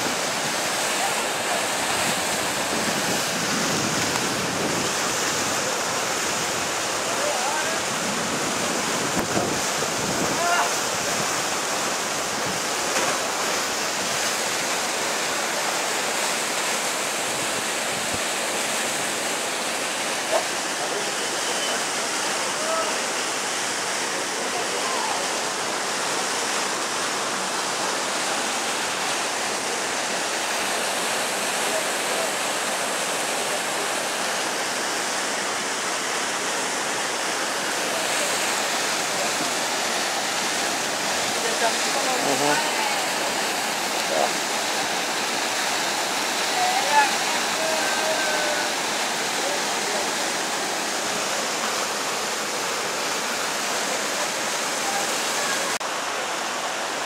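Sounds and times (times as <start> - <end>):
water rushing over rocks: 0.0 - 57.0.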